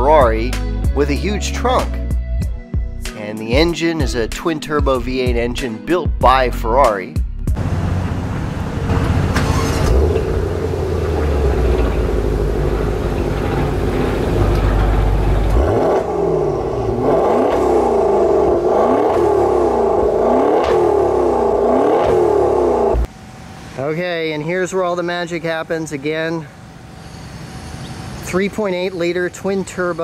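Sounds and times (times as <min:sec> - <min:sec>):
car engine rumbling and revving: 0:07.4 - 0:23.6.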